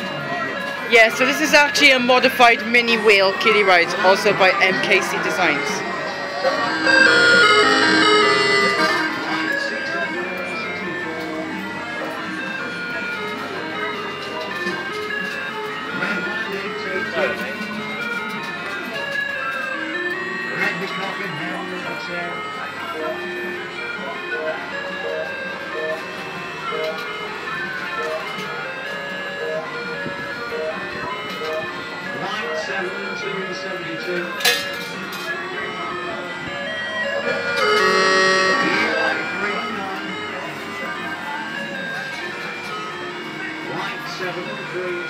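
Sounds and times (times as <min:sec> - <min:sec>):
kiddie ride electronic jingle: 0:00.0 - 0:17.7, 0:18.6 - 0:45.0.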